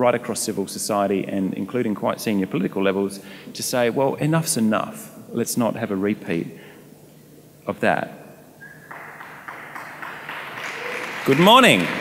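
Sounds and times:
audience applause: 8.9 - 12.0.

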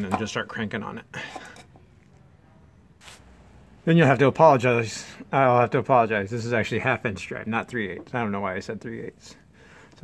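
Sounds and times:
man speaking: 0.0 - 1.2, 3.8 - 9.4
faint background noise: 0.0 - 10.0.

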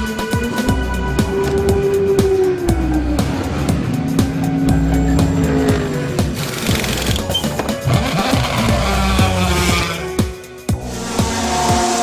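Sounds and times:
background music with steady beat: 0.0 - 12.0
race car engine at high revs: 3.2 - 12.0.

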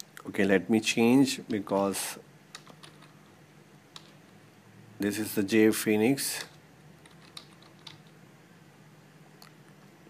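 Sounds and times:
faint keyboard keystrokes: 6.4 - 8.1.

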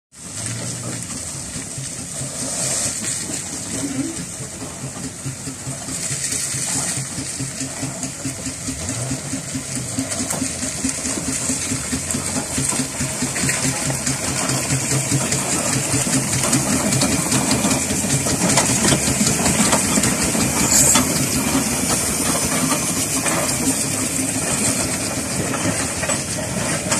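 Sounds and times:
steam engine beat: 0.1 - 26.9
steam hissing: 0.2 - 26.9.

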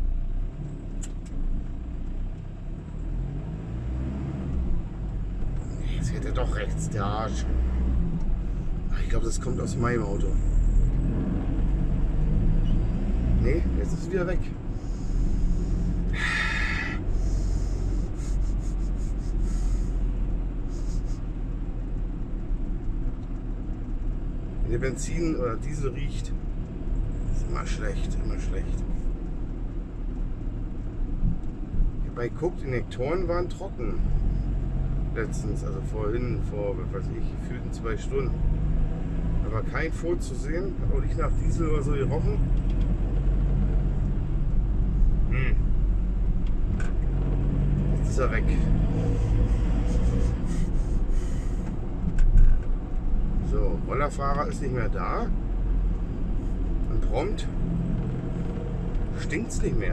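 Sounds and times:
van engine and road rumble: 0.0 - 59.9
sharp breath through nose: 14.7 - 20.0, 49.2 - 51.8.

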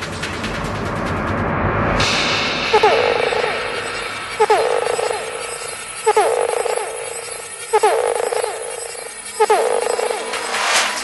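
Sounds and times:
psytrance synth figure: 2.7 - 10.6.

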